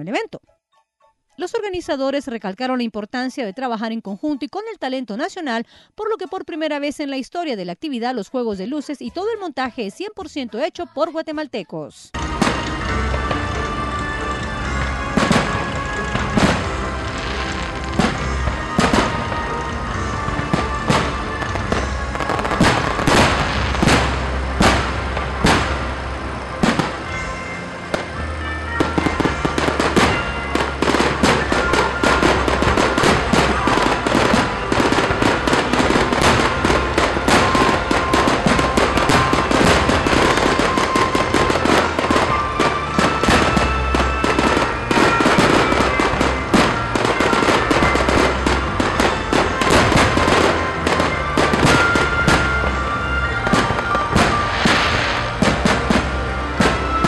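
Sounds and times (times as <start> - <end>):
music playing: 0.0 - 57.0
fireworks crackling: 12.2 - 57.0
fireworks shell bursts: 53.6 - 57.0.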